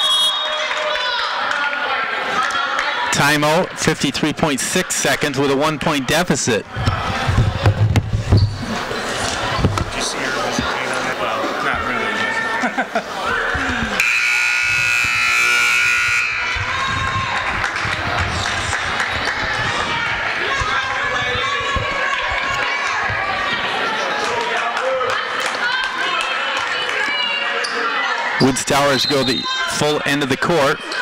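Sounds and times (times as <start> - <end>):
spectators talking: 0.0 - 31.0
scoreboard buzzer: 14.0 - 16.8.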